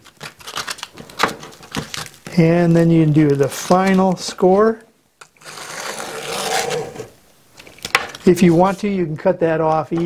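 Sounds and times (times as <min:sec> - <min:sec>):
clicks taps and crinkles: 0:00.0 - 0:05.4, 0:07.6 - 0:08.4.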